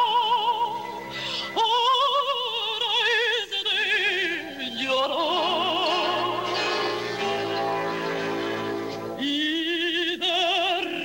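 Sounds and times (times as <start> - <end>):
operatic soprano singing: 0.0 - 0.9, 1.5 - 7.8, 9.2 - 11.0.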